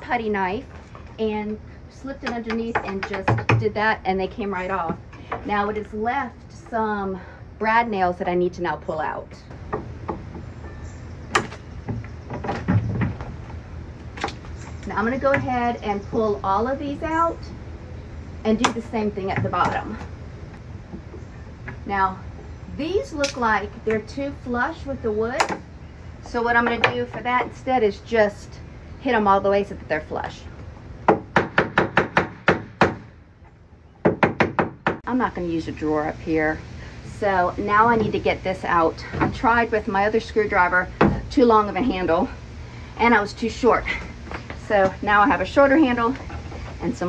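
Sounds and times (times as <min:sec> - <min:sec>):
knocks and thumps of wood: 0:09.5 - 0:10.6, 0:11.3 - 0:14.5.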